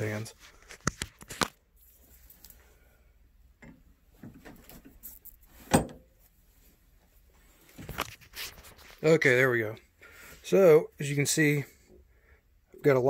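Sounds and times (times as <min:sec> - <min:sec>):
handling rustles and knocks: 0:03.6 - 0:09.3.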